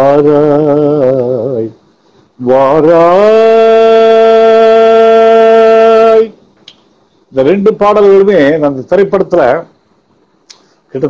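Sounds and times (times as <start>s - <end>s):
man singing a long note: 0.0s - 1.8s, 2.4s - 6.4s.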